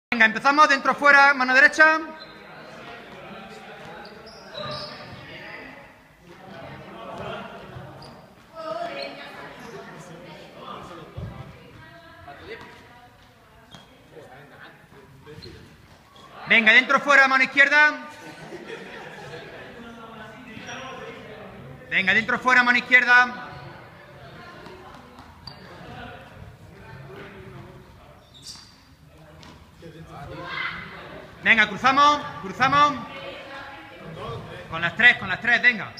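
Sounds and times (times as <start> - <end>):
balls bouncing on hard floor: 11.1 - 14.0.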